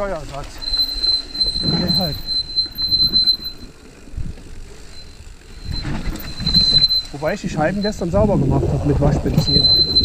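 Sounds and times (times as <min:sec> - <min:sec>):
disc brakes squealing: 0:00.0 - 0:10.0
tyres rumbling on dirt trail: 0:00.0 - 0:10.0.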